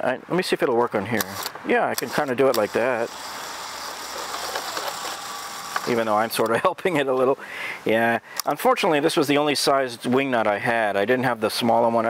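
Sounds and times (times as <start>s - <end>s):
cordless drill running: 1.4s - 6.5s.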